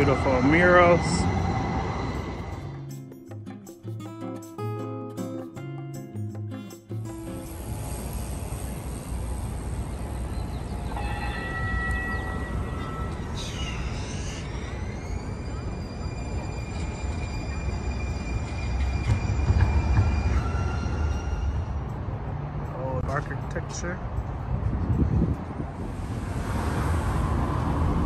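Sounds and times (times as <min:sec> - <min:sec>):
rising whine: 0:00.0 - 0:03.0, 0:07.1 - 0:22.5, 0:25.6 - 0:28.0
light-rail train rumbling past: 0:00.0 - 0:03.1, 0:09.3 - 0:28.0
high squealing tones: 0:09.8 - 0:22.1.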